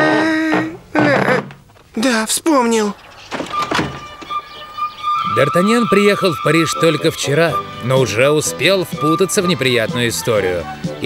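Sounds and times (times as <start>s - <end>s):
wooden shutters knocking and rattling: 3.1s - 4.3s
steady high note: 4.0s - 9.8s.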